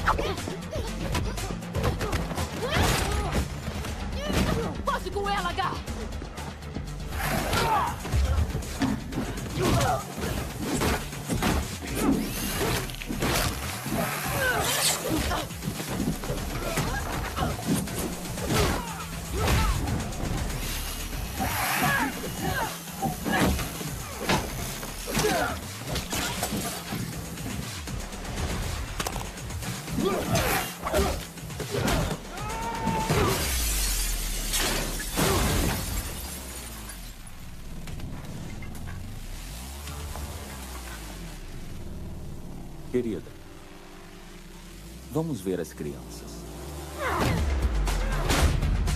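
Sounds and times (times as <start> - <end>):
music: 0.0 - 48.9
men grunting and crying out: 7.2 - 10.9, 13.8 - 26.5, 29.9 - 33.8.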